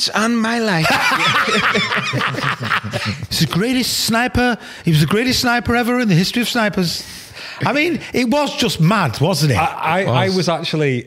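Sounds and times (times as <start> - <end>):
men laughing: 0.8 - 3.5.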